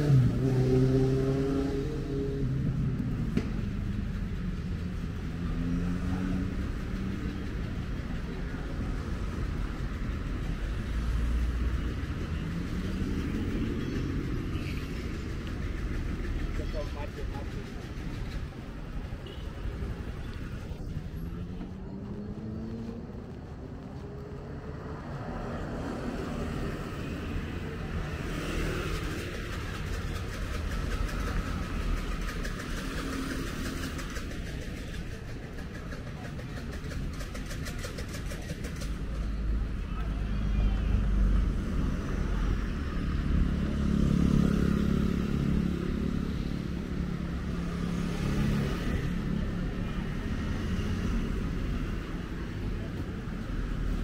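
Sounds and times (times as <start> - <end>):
vehicle accelerating: 0.0 - 18.6, 20.0 - 54.0
deep engine rumble passing: 0.0 - 47.8
cars and motorbikes passing: 0.0 - 54.0.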